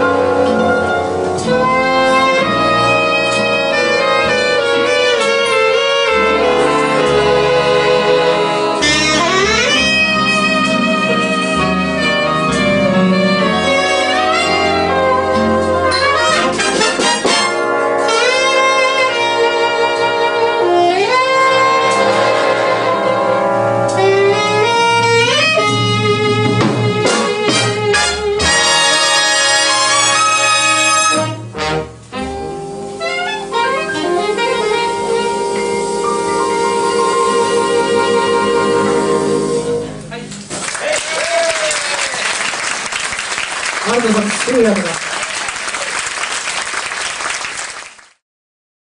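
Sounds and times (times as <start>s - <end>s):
saxophone solo: 0.0s - 32.4s, 33.0s - 40.2s
jazz big band: 0.0s - 48.0s.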